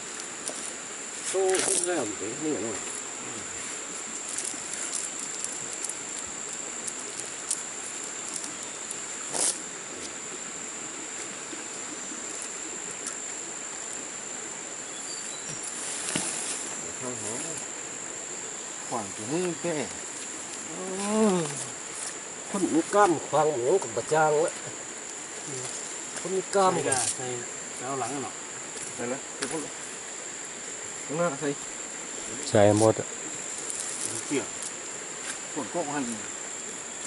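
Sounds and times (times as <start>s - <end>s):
high-pitched insect drone: 0.0s - 37.0s
voices: 1.2s - 6.0s, 15.4s - 17.8s, 18.7s - 29.9s, 31.0s - 36.4s.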